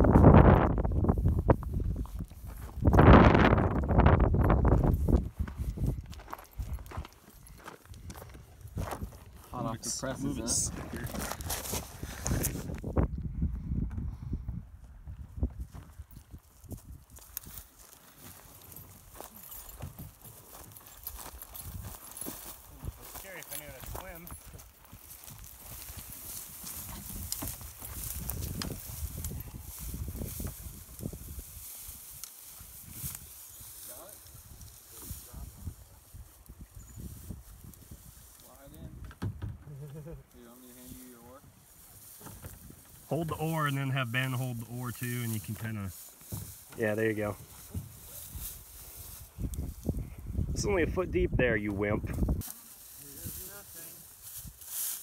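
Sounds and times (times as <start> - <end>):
footsteps through dry grass: 0.0 - 13.8, 14.4 - 39.0, 40.2 - 55.0.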